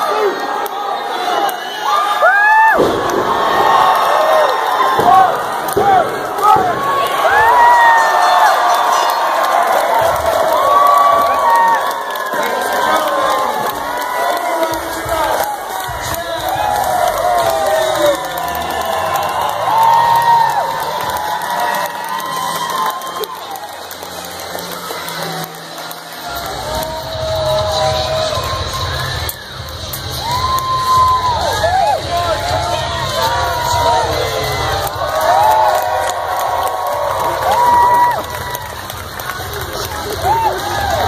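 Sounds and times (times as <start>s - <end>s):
crowd cheering and whooping: 0.0s - 41.0s.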